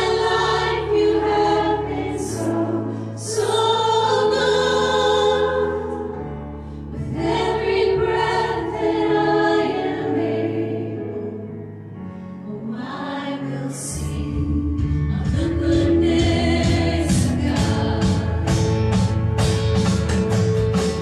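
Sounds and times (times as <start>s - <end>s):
voices singing together: 0.0s - 11.6s, 12.5s - 18.5s
acoustic guitar: 14.1s - 21.0s.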